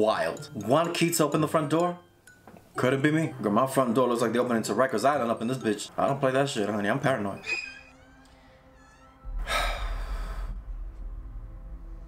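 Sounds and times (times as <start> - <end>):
low rumbling drone: 7.6 - 12.0.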